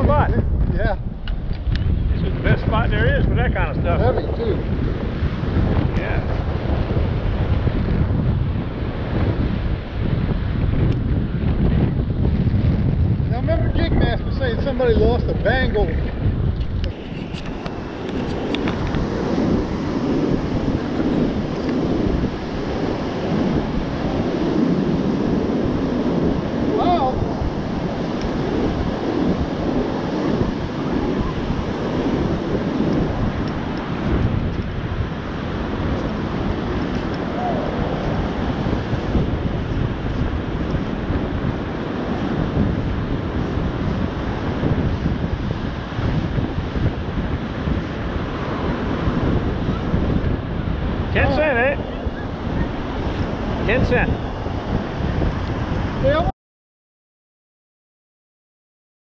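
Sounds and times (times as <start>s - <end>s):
surf breaking on beach: 0.0s - 1.2s, 1.8s - 56.3s
wind buffeting microphone: 0.0s - 56.3s.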